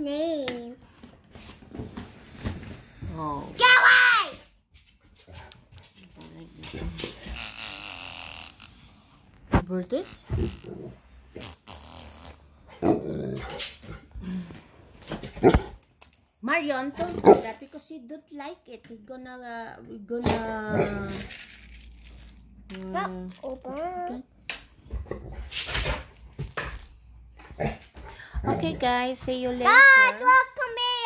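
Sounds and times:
large dog growling: 12.7 - 14.1.

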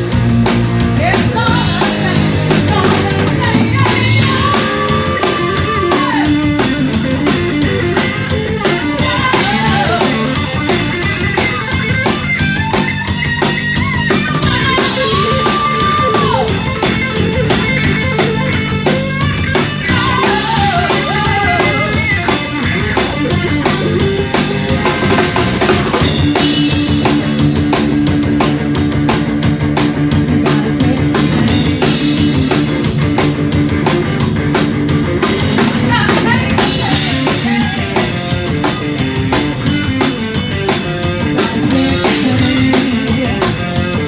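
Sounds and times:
bass guitar: 0.0 - 44.0
drum kit: 0.0 - 44.0
electric guitar: 0.0 - 44.0
sliding guitar lead line: 0.0 - 44.0.

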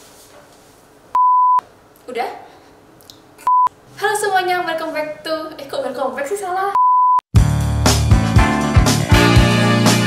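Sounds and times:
high bleep tone: 1.2 - 1.6, 3.5 - 3.7, 6.8 - 7.2
woman speaking: 2.0 - 2.6, 4.0 - 6.8.

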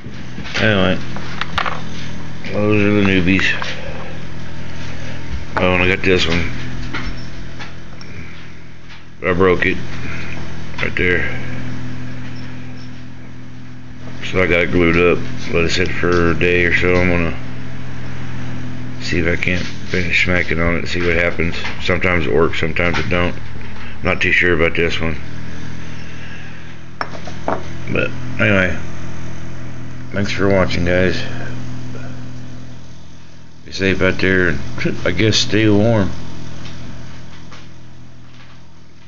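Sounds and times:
low room hum: 0.0 - 39.0.

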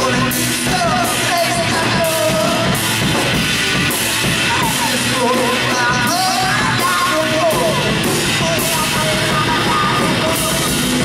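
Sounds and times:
person singing: 0.0 - 2.8, 4.2 - 11.0
drum kit with crashing cymbals: 0.0 - 11.0
electric guitar: 0.0 - 11.0.

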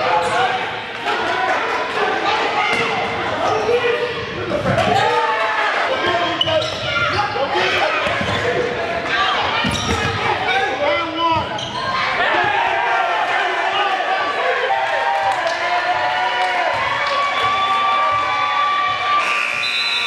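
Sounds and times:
shouts and voices in gym: 0.0 - 20.0.

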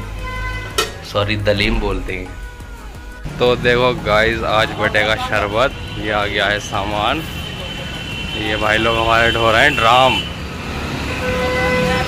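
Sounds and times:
long steady horn tone: 0.0 - 0.8, 4.7 - 12.0.

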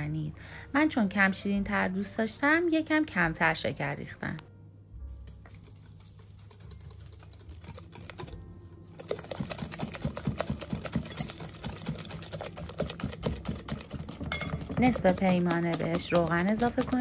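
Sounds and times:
whisk clicking against glass bowl: 5.5 - 17.0.

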